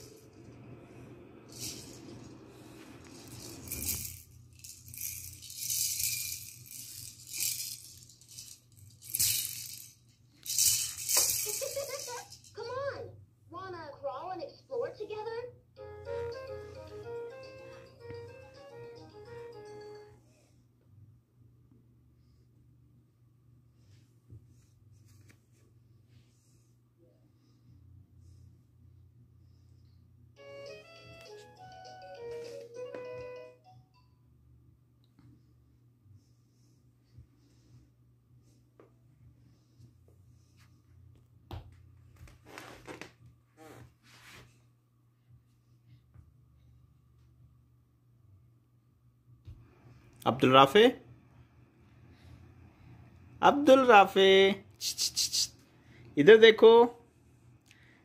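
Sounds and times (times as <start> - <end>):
baby rattle shaken: 1.5 - 2.2, 3.0 - 12.6, 54.8 - 55.5
electronic toy jingle: 15.8 - 20.2, 30.4 - 34.3
person's voice: 53.4 - 55.5, 56.2 - 57.0.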